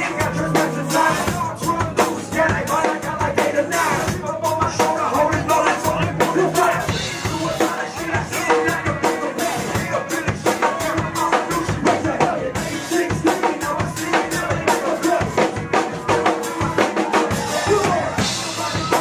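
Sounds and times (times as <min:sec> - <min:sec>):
live band music: 0:00.0 - 0:19.0.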